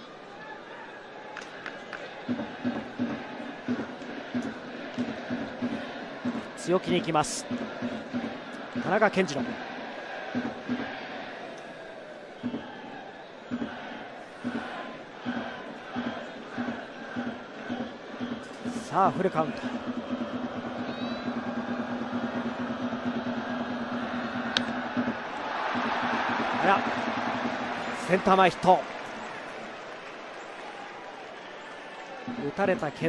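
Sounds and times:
crowd cheering: 0.0 - 33.0
stadium crowd noise: 0.0 - 33.0
steady rhythmic beat: 2.3 - 9.7, 13.5 - 28.8.

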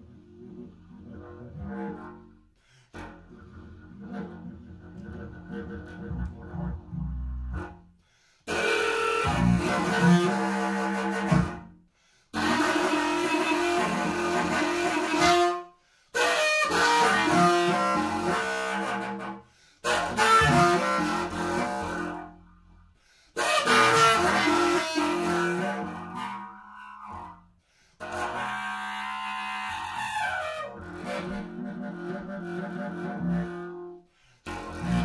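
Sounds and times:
pipe wind instrument sustained note: 8.5 - 11.6, 12.4 - 15.6, 16.2 - 22.4, 23.4 - 27.4, 28.0 - 35.0.

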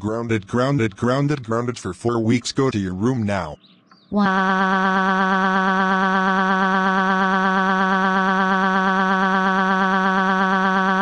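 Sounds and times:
buzzy electronic tone wobbling: 4.2 - 11.0.

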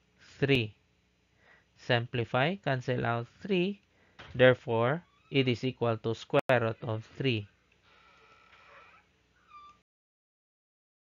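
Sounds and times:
faint animal calls: 8.0 - 9.8.

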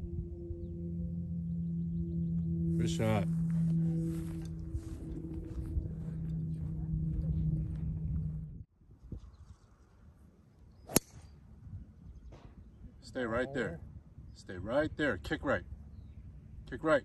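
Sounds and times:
steady low hum with held tones: 0.0 - 8.7.

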